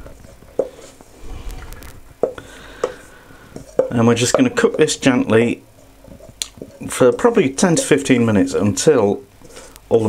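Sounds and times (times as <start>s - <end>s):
wooden spoon scraping pan: 0.0s - 9.8s.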